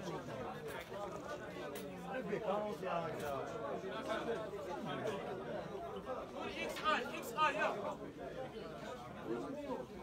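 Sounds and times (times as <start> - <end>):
crowd of men talking: 0.0 - 10.0.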